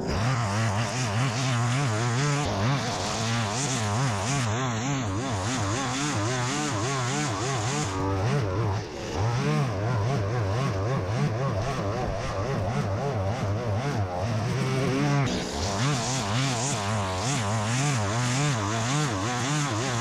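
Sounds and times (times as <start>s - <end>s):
string trimmer cutting grass: 0.0s - 20.0s.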